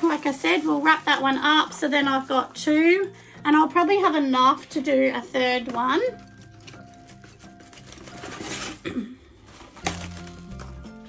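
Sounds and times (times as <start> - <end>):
cling film rustling and tearing: 0.0 - 3.3, 5.6 - 11.0
background music with low notes: 0.0 - 11.0.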